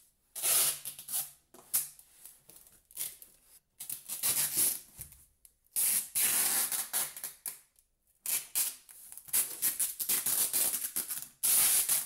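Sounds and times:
packing tape pulled off roll: 8.3s - 12.0s.

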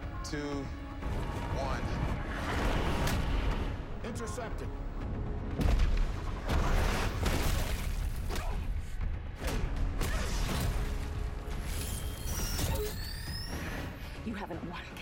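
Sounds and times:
dramatic music score: 0.0s - 15.0s.

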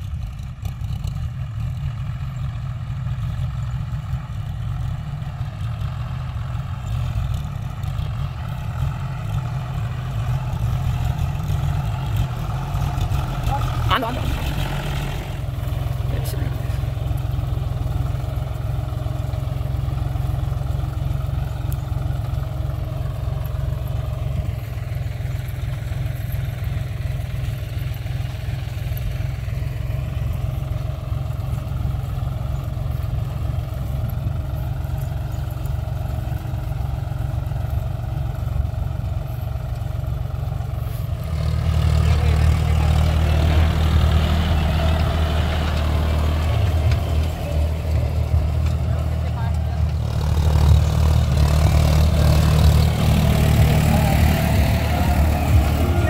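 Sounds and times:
tractor diesel engine running: 0.0s - 56.0s.

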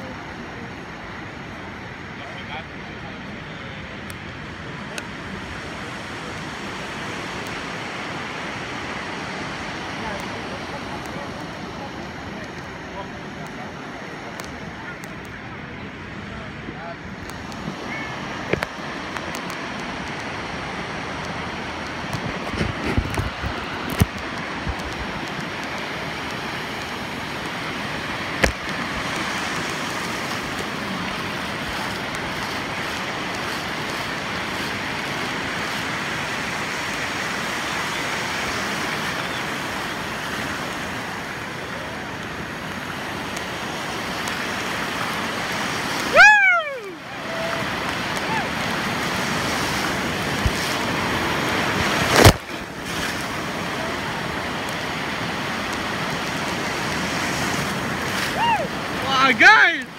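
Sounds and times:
waves breaking on beach: 0.0s - 59.9s.

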